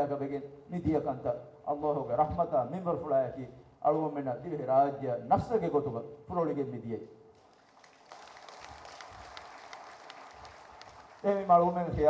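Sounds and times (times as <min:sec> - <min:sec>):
faint audience applause: 0:07.4 - 0:12.0.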